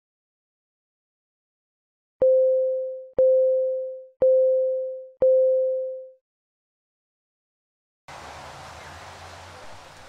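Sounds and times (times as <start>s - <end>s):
electronic countdown beeps: 2.2s - 6.2s.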